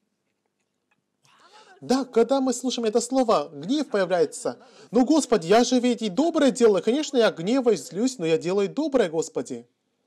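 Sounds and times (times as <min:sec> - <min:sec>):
man speaking: 0:01.5 - 0:09.7
man breathing in softly: 0:04.6 - 0:05.0.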